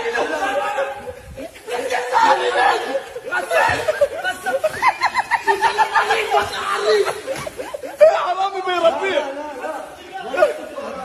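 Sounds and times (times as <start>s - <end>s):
excited people talking: 0.0s - 11.0s.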